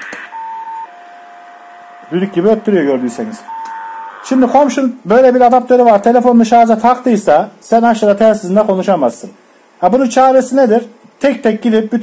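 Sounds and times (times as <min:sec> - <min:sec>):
radio band noise hiss: 0:00.0 - 0:00.4, 0:01.6 - 0:12.0
radio whistling tones: 0:00.0 - 0:04.8.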